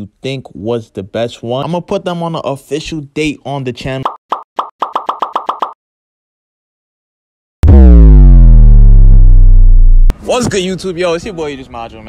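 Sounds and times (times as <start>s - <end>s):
deep bass-drop effect: 7.6s - 10.1s.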